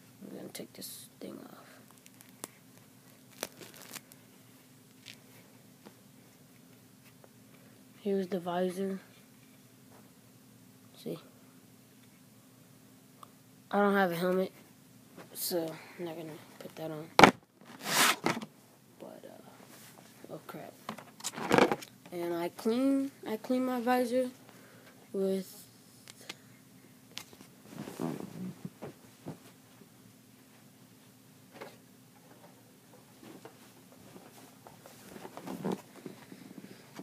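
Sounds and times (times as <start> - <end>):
faint low hum: 0.0 - 37.0
plastic visor scraping: 17.2 - 18.4, 35.0 - 36.2.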